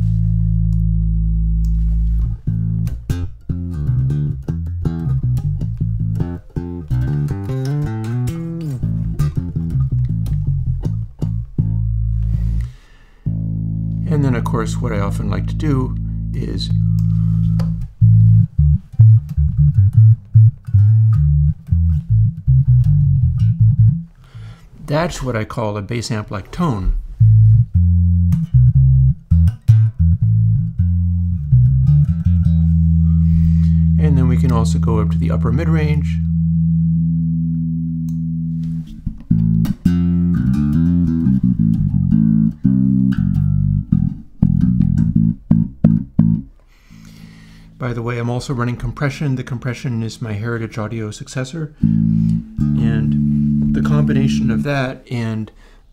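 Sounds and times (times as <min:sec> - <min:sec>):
filtered electric bass plucked notes: 0:00.0 - 0:55.5.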